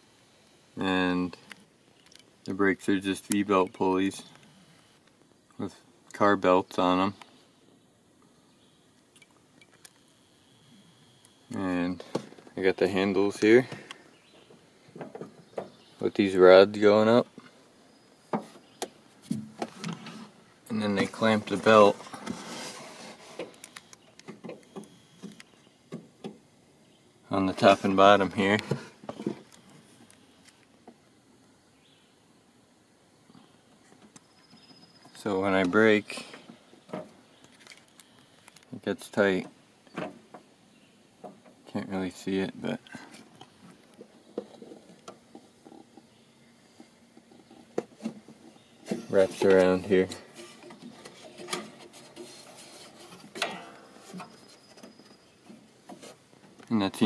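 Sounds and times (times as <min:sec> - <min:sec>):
clicks and knocks on steel: 0:53.3 - 0:54.0.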